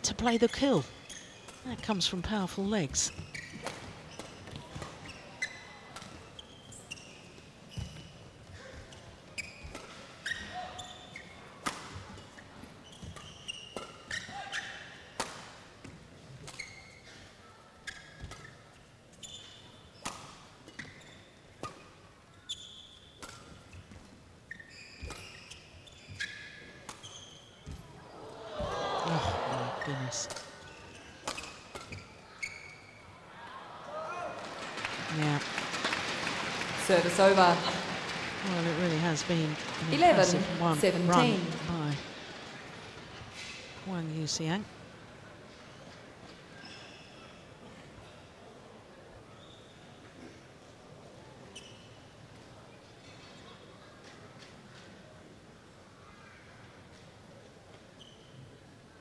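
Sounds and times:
shoes squeaking on court floor: 0:00.2 - 0:33.2, 0:38.6 - 0:43.8, 0:45.5 - 0:47.4, 0:49.3 - 0:50.3, 0:51.4 - 0:53.4, 0:57.7 - 0:58.7
crowd noise: 0:27.7 - 0:31.3, 0:32.1 - 0:46.5.

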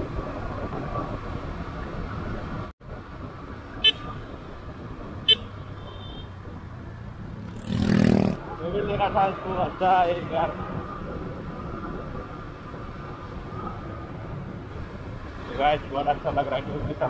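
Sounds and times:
road rumble: 0:00.0 - 0:17.0
wind on microphone: 0:00.0 - 0:17.0
horn toots: 0:05.2 - 0:06.4.

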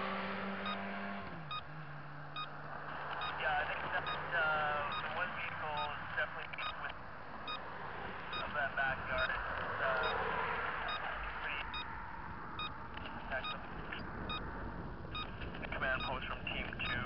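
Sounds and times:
motorcycle riding: 0:00.0 - 0:06.2
turn-signal beeps: 0:01.5 - 0:01.7, 0:02.4 - 0:07.6, 0:08.3 - 0:10.2, 0:10.8 - 0:11.9, 0:12.6 - 0:14.5, 0:15.1 - 0:17.0
wind noise: 0:06.6 - 0:17.0.

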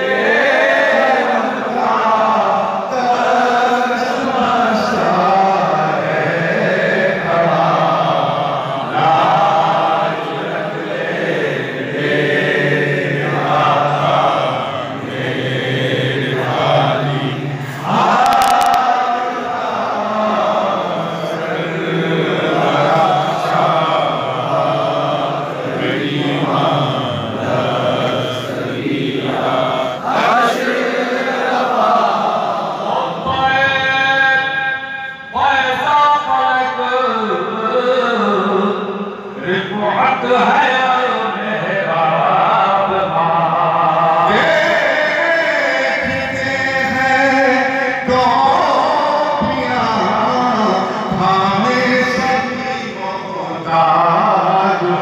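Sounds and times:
man chanting into a microphone: 0:00.0 - 0:55.0.

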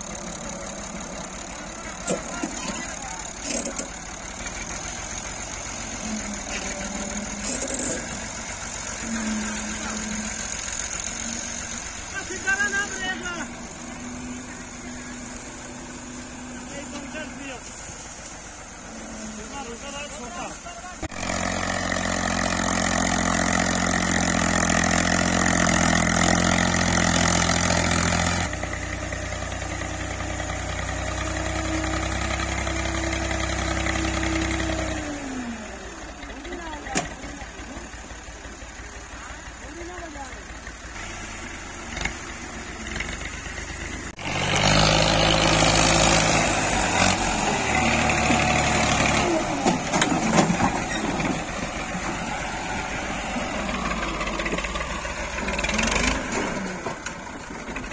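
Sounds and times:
tractor diesel engine working: 0:00.0 - 0:57.9.

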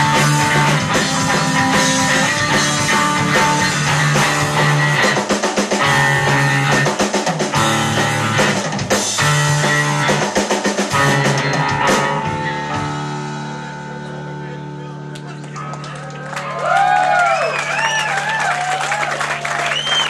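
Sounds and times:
drum kit hard hits: 0:00.0 - 0:13.6
electric bass guitars: 0:00.0 - 0:18.2.

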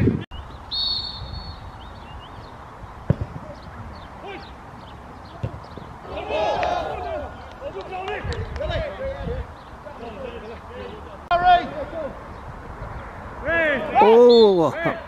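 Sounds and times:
wind rumble on microphone: 0:00.0 - 0:04.2, 0:07.8 - 0:09.6, 0:12.3 - 0:13.5
short referee's whistle: 0:00.7 - 0:01.6
football kicked with thud: 0:03.0 - 0:03.6, 0:05.4 - 0:05.9
players shouting: 0:03.2 - 0:12.3, 0:13.3 - 0:15.0.

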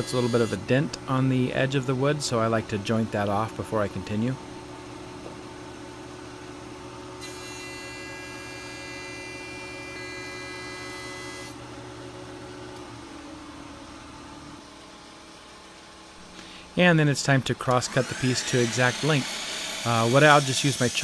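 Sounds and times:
jointer knives whining on wood: 0:07.2 - 0:11.6, 0:17.9 - 0:21.0.

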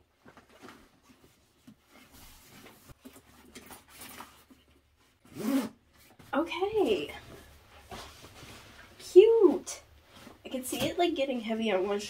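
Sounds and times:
rustling of items in bag: 0:00.0 - 0:05.2
zipper pulled on bag: 0:05.3 - 0:05.8.

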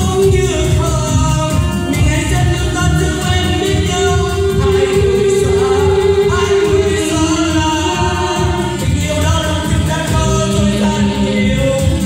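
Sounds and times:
keyboard with steady beat: 0:00.0 - 0:12.0
man singing through microphone: 0:00.0 - 0:12.0.

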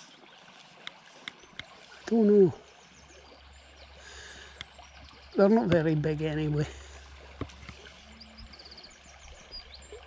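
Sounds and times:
murmur of shallow stream: 0:00.0 - 0:10.0
songbirds chirping: 0:00.0 - 0:10.0.

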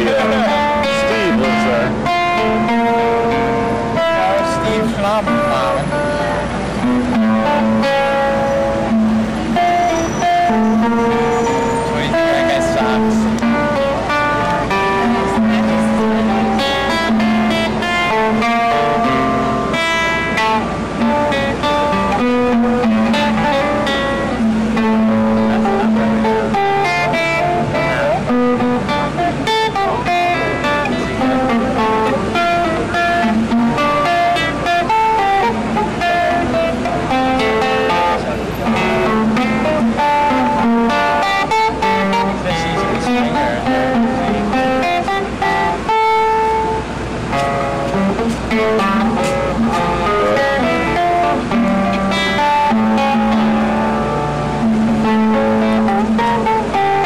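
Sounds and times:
fingerstyle classical guitar: 0:00.0 - 0:57.0.

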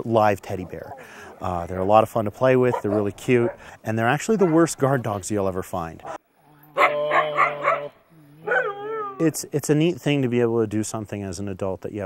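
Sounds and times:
husky howling call: 0:06.6 - 0:09.3.

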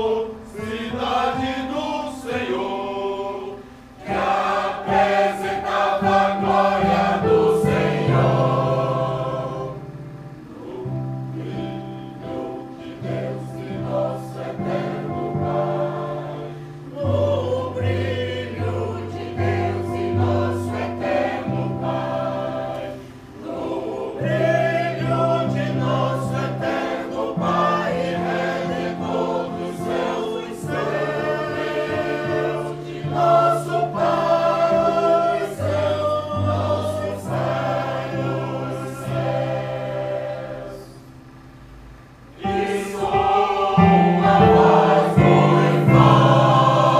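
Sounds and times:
choir singing in parts: 0:00.0 - 0:41.5, 0:42.3 - 0:46.9
electronic keyboard low notes: 0:03.9 - 0:46.9.

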